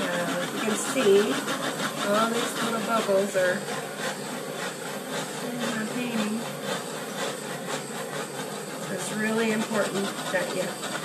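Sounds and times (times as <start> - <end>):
handheld torch hissing: 0.0 - 11.0.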